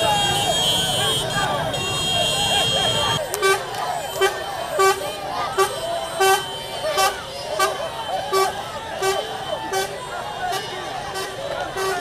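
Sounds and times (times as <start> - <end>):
crowd shouting: 0.0 - 12.0
vehicle horn tooting: 0.0 - 12.0.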